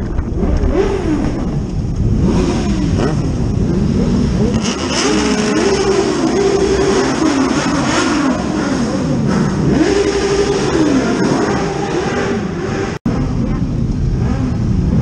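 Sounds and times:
motorcycle engines revving: 0.0 - 15.0.

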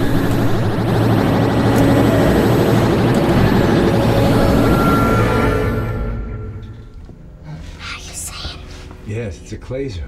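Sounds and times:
low sci-fi rumbling drone: 0.0 - 8.5
film score: 0.0 - 10.0.

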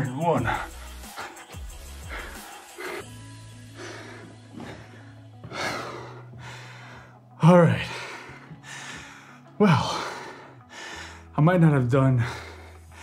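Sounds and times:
man panting heavily: 0.0 - 11.3, 12.2 - 13.0
background music: 0.0 - 13.0.

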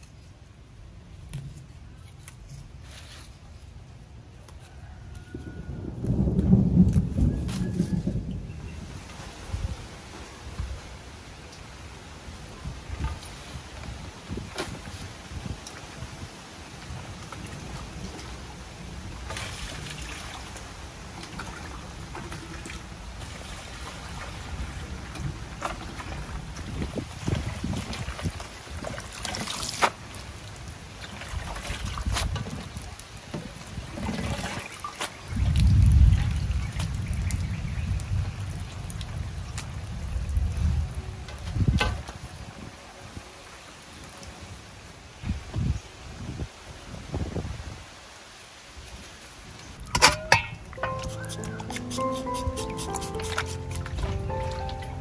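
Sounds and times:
water splashing and dripping: 6.0 - 42.6, 49.0 - 55.0.

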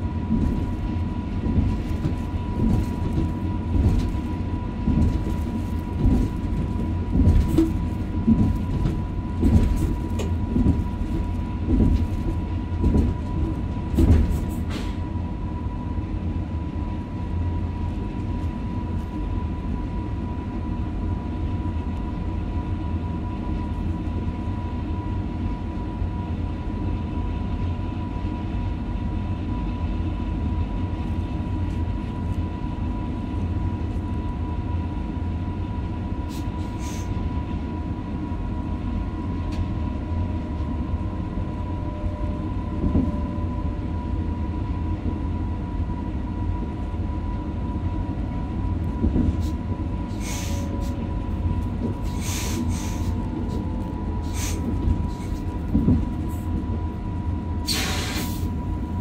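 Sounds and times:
train low rumble: 0.0 - 59.0.

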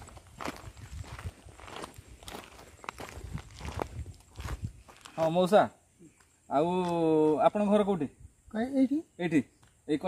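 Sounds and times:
footsteps on gravel: 0.0 - 5.4.

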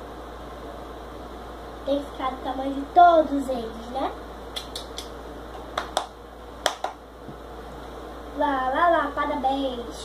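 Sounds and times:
child clapping hands: 4.5 - 7.0.

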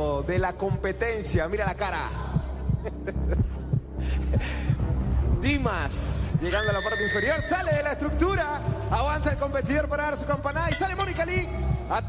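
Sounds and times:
low thumping heartbeat-like beat: 0.0 - 12.0.

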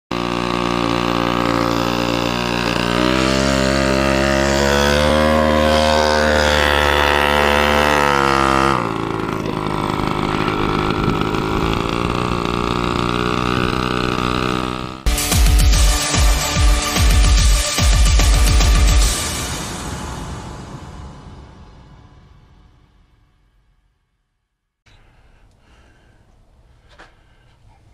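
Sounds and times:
small motorcycle engine revving: 0.1 - 20.5
electronic music with heavy beat: 15.1 - 19.5.

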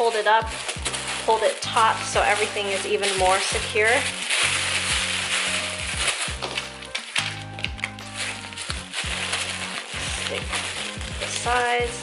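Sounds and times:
tissue paper crinkling: 0.0 - 12.0
background music with bass: 0.4 - 12.0.

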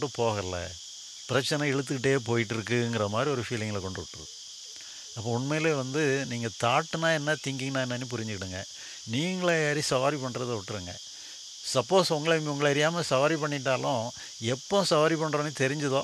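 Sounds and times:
man talking into a microphone: 0.0 - 4.2, 5.2 - 11.0, 11.7 - 16.0
high-pitched insect chorus: 0.0 - 16.0.

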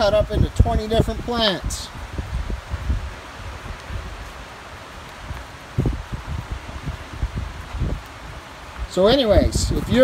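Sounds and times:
microphone rumble and thumps: 0.0 - 10.0.

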